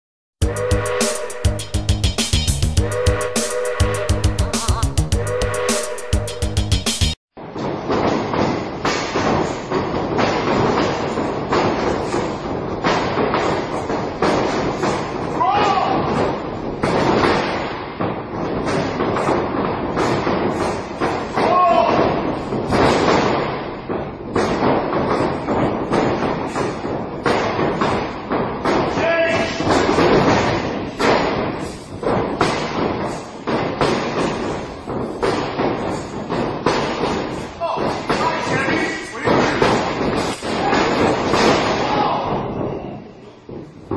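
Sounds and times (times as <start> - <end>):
bodies slamming onto ring mat: 7.6 - 38.6.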